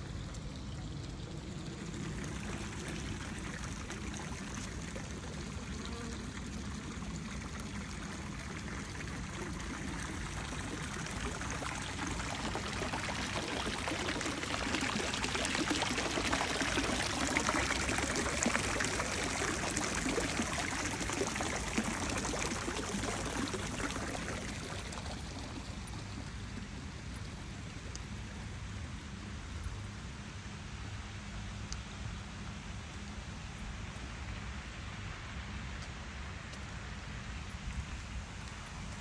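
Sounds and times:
fountain water splashing: 0.0s - 28.9s, 32.2s - 39.0s.

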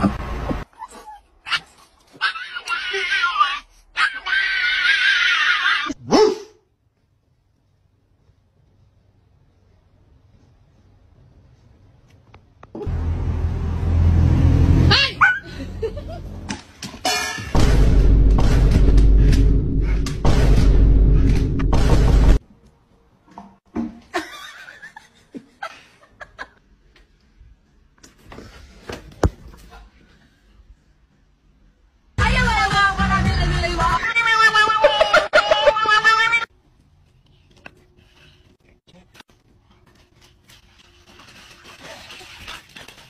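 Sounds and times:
dog yipping: 0.7s - 6.6s, 15.0s - 15.5s
cat yowling: 2.2s - 6.0s.

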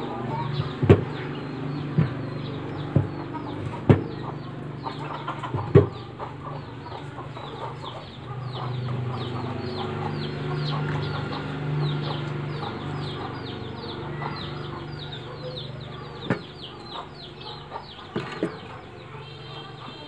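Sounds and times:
birds chirping: 0.0s - 20.0s.

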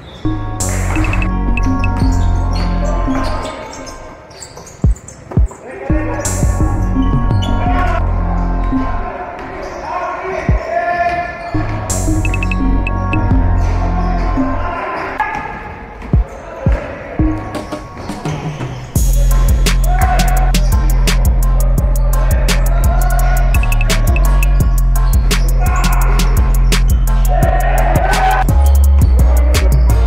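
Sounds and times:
background music: 0.0s - 4.3s, 5.8s - 9.3s, 11.6s - 15.0s, 17.0s - 30.0s
basketball bouncing on gym floor: 4.6s - 5.6s.

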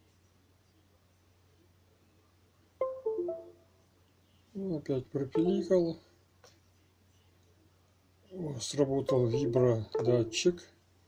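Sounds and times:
descending notification chime: 2.8s - 3.6s, 9.1s - 10.4s.

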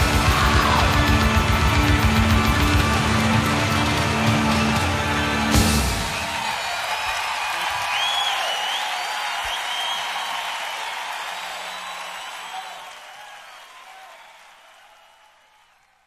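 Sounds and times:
audience applauding and cheering: 0.0s - 16.0s
whistles from audience: 5.5s - 16.0s.

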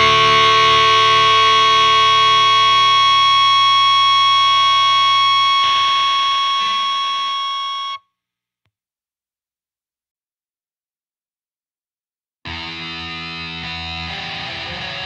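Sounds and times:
distorted electric guitar chord: 0.0s - 7.5s, 12.5s - 15.0s.

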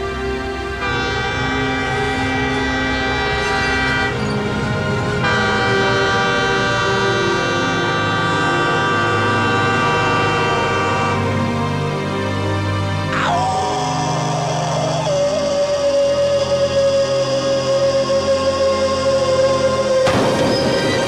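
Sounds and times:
train horn blast: 0.0s - 12.2s.

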